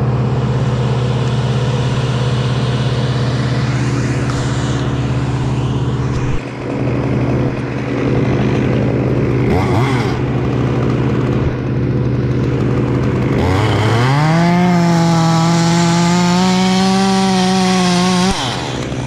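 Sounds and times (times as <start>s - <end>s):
chainsaw revving and cutting wood: 0.0s - 19.0s.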